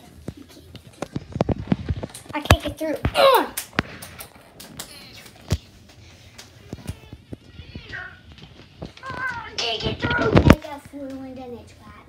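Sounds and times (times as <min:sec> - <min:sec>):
child's high-pitched voice: 0:09.0 - 0:12.0.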